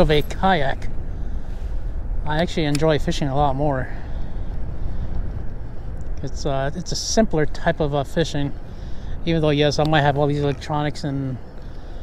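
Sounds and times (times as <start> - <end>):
low wind rumble on microphone: 0.0 - 12.0.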